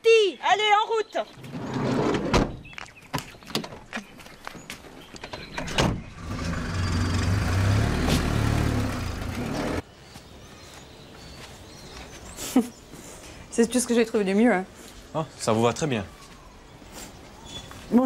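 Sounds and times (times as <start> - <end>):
car engine running: 6.2 - 9.8.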